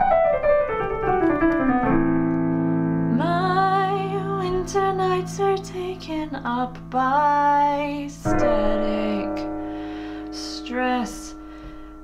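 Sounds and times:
piano chords: 0.0 - 12.0
woman singing: 3.1 - 9.6, 10.2 - 11.5.

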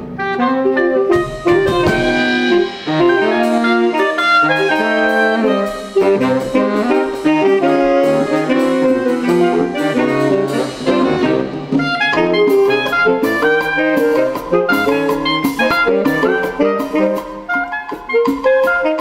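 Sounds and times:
drum kit: 0.0 - 19.0
saxophone quartet playing: 0.0 - 19.0.

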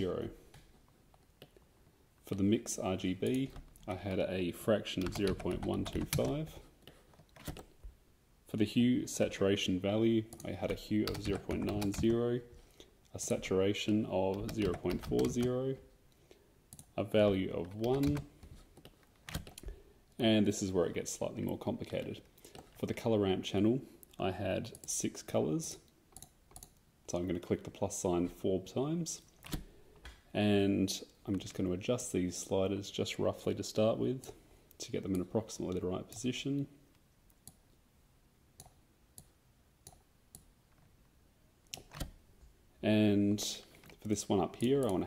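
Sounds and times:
person speaking: 0.0 - 0.8, 2.2 - 7.8, 8.4 - 16.0, 16.7 - 18.6, 19.4 - 25.9, 27.0 - 29.3, 30.3 - 36.9, 42.8 - 45.0
keyboard keys clicking: 10.7 - 12.1
computer mouse clicks: 26.2 - 26.8.

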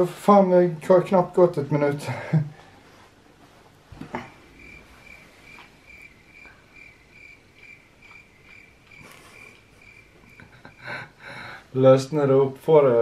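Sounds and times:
cricket chirping: 4.6 - 11.0.

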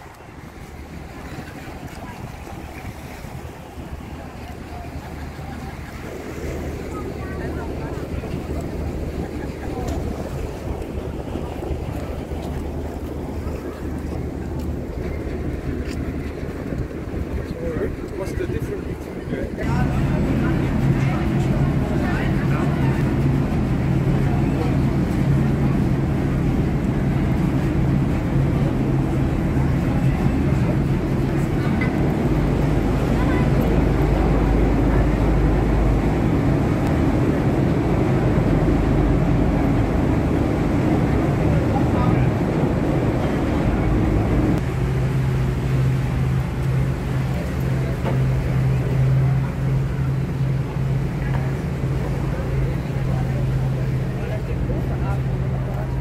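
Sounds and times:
boat engine humming: 0.0 - 56.0
people's voices: 0.0 - 56.0.

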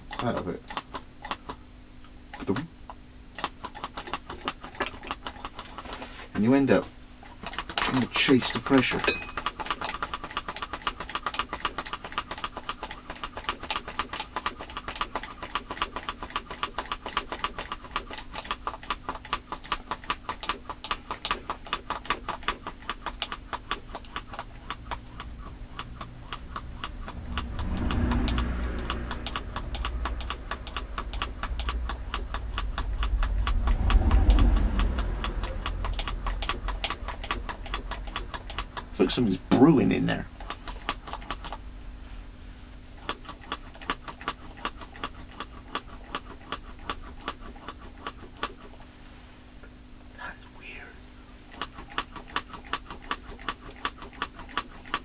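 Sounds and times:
low rumbling swells: 32.4 - 37.2.

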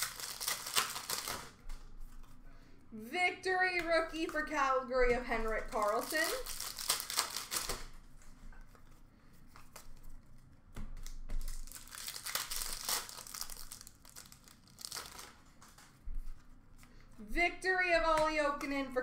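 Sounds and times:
foil wrapper crinkling and tearing: 0.0 - 1.6, 5.5 - 8.0, 9.7 - 16.0.

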